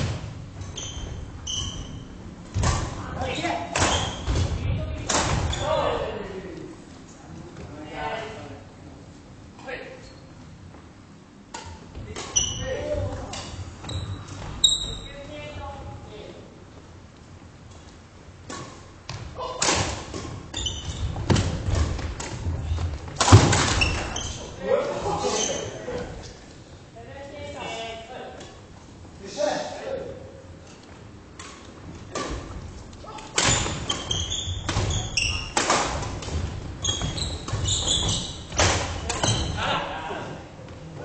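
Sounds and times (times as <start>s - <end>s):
shoes squeaking on wooden floor: 0.5s - 2.3s, 13.8s - 15.2s, 20.4s - 24.6s, 31.0s - 35.6s, 36.3s - 39.6s
racket hitting shuttlecock: 31.4s - 39.4s.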